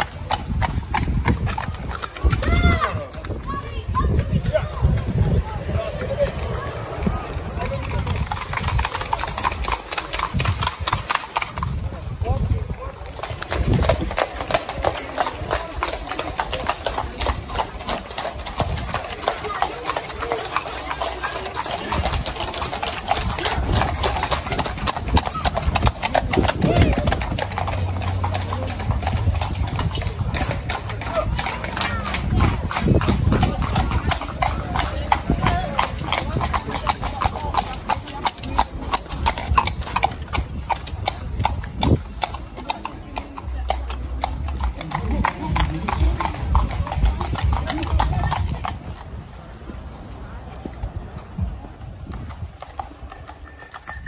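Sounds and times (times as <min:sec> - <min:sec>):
horse hooves trotting on tarmac: 0:00.0 - 0:54.0.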